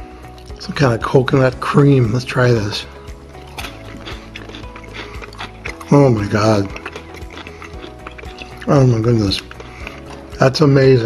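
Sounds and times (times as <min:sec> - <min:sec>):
quiet background music: 0:00.0 - 0:11.0
chewing candy clicks: 0:03.3 - 0:10.6.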